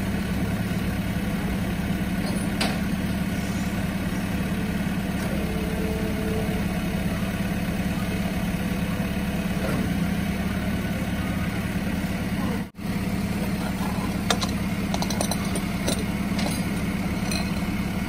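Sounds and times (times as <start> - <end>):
truck engine idling: 0.0 - 18.0.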